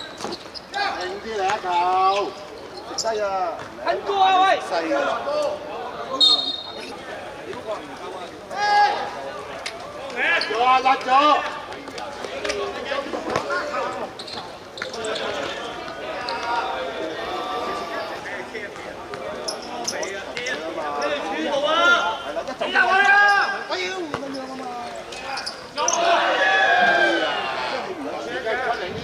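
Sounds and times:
players shouting: 8.5 - 11.7, 20.6 - 28.8.

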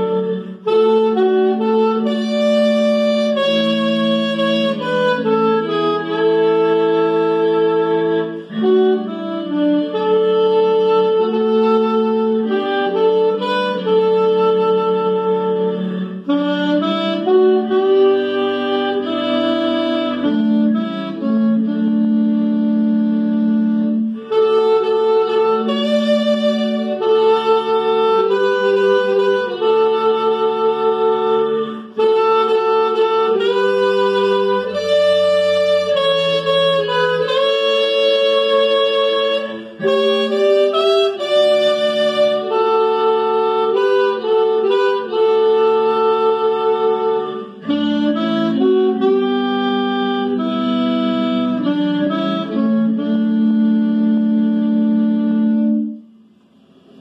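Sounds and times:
saxophones playing a hymn: 0.0 - 56.1.

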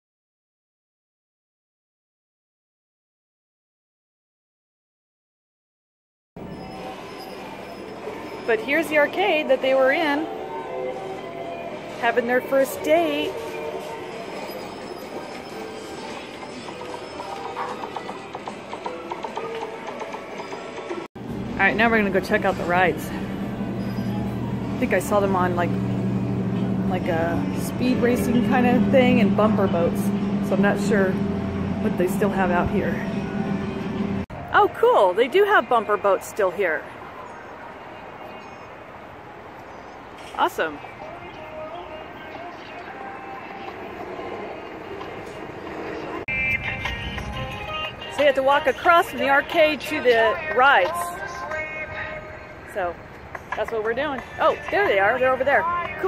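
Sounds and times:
outdoor background noise: 6.4 - 56.0
arcade machine music and jingles: 6.5 - 21.0.

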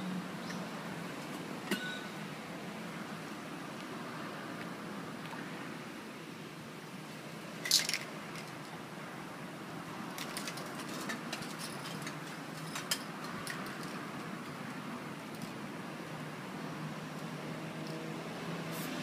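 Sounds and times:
background noise: 0.0 - 19.0
clicks and scratches of tools: 10.1 - 14.6.

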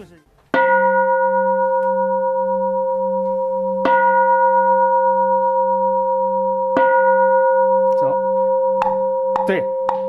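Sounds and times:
bronze bowl bell ringing: 0.5 - 10.0.

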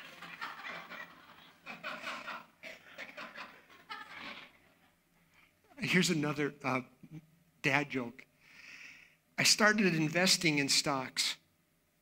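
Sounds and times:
audience laughing: 0.0 - 4.9.

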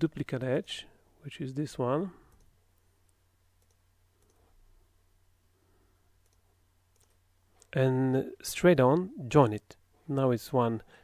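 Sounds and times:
low steady hum: 0.0 - 11.0
computer mouse clicks: 3.6 - 4.5, 6.2 - 7.8.

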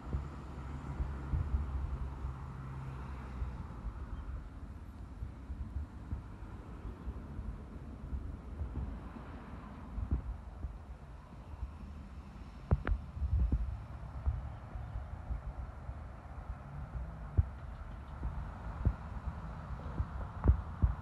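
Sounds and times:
wind rumble on microphone: 0.0 - 21.0.

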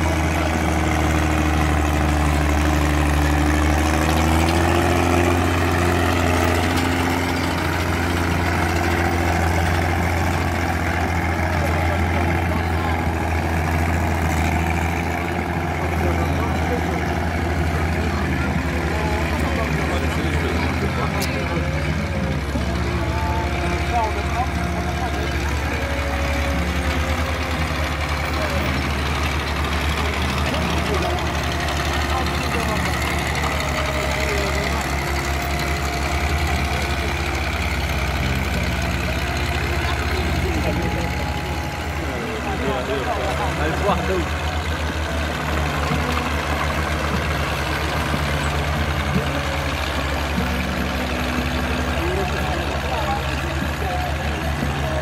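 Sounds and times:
crowd chatter: 0.0 - 55.0
tractor engines running: 0.0 - 55.0.

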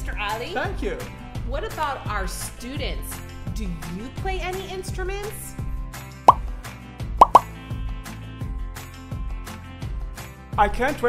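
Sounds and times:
background music: 0.0 - 11.0
cartoon pop sound effects: 7.2 - 7.5.

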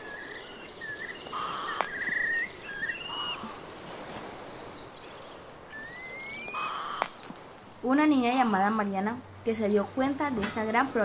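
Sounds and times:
rising whistled bird call: 0.0 - 3.6, 5.7 - 7.2
birds chirping and trilling: 0.0 - 10.8.

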